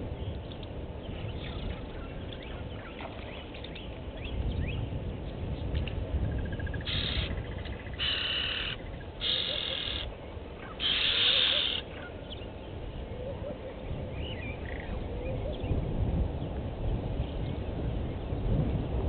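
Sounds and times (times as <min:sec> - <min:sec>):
small birds chirping: 0:06.5 - 0:13.1.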